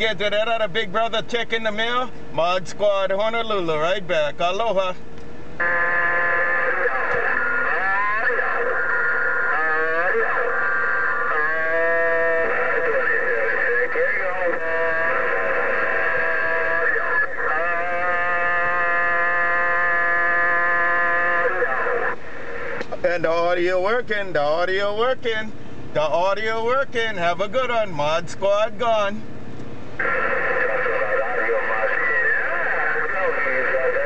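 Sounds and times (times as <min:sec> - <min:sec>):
warbling radio tones: 0:05.6 - 0:24.0, 0:30.0 - 0:34.0.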